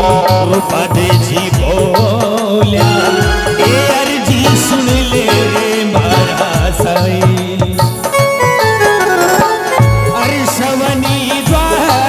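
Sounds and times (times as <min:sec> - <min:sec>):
reedy melody instrument: 0:00.0 - 0:12.0
steady drum beat: 0:00.0 - 0:12.0.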